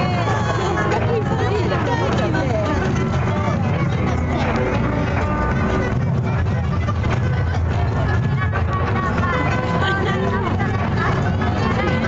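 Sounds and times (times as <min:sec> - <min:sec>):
crowd chatter: 0:00.0 - 0:12.0
music from loudspeakers: 0:00.0 - 0:12.0.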